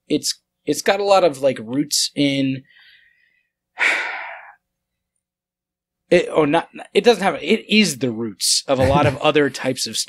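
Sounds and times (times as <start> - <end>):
breath into microphone: 2.7 - 4.6.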